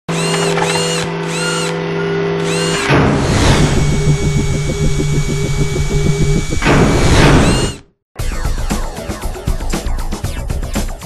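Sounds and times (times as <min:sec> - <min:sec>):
high servo whirs: 0:00.1 - 0:07.9
low electronic hum: 0:03.4 - 0:07.8.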